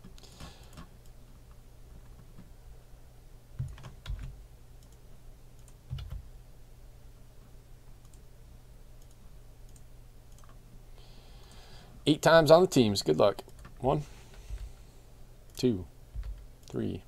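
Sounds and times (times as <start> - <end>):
steady low hum: 0.0 - 17.0
faint computer clicks: 9.0 - 10.6.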